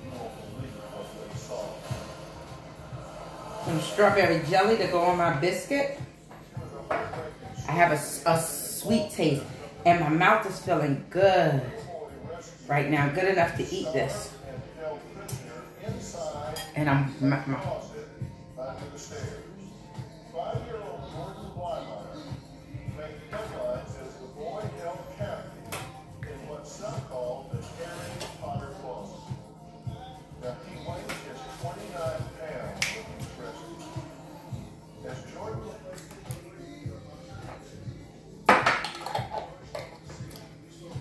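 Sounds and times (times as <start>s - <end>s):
song with singing: 0.0s - 41.0s.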